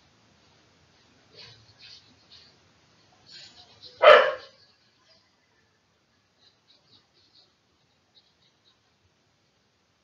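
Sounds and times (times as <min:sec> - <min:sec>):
dog barking: 0:04.0 - 0:04.6.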